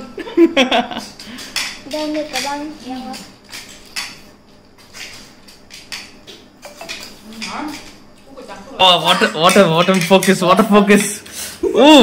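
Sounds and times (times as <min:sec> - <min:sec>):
snail shells clinking on steel bowl: 0:06.6 - 0:07.9.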